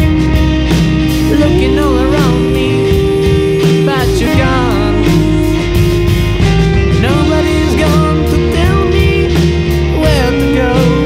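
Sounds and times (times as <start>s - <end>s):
rock band music: 0.0s - 11.0s.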